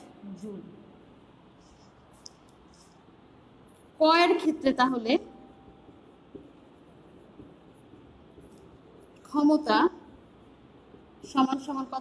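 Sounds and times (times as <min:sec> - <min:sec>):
marker writing on whiteboard: 0:05.7 - 0:11.9.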